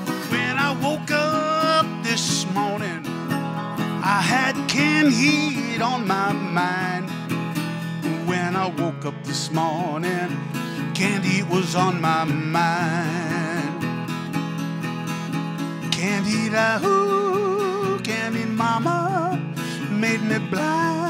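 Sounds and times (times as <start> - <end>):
resonator guitar playing blues: 0.0 - 21.0.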